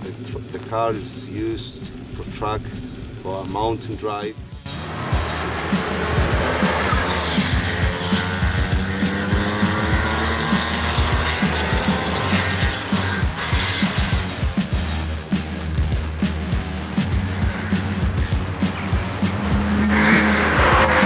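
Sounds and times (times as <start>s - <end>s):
car engine revving: 0.0s - 21.0s
background music with beat: 1.4s - 21.0s.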